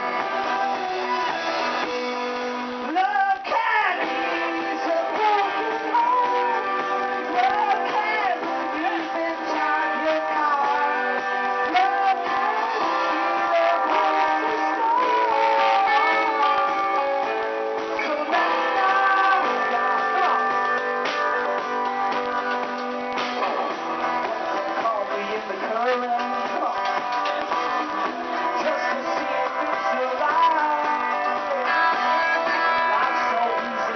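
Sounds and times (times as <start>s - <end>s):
acoustic band playing live: 0.0s - 33.9s
acoustic guitars strummed and picked: 0.0s - 33.9s.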